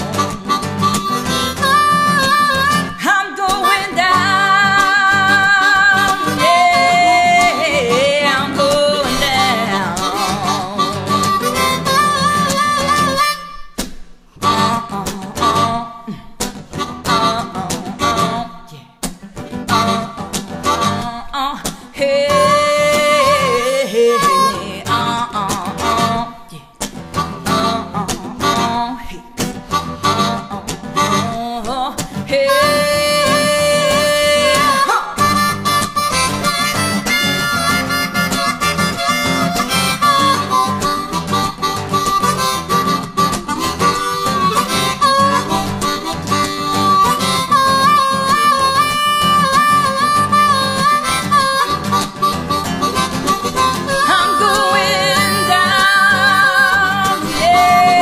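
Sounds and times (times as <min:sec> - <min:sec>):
harmonica solo: 0:00.0 - 0:18.8, 0:19.4 - 0:21.3, 0:22.0 - 0:26.5, 0:27.1 - 0:58.0
acoustic guitar: 0:00.0 - 0:58.0.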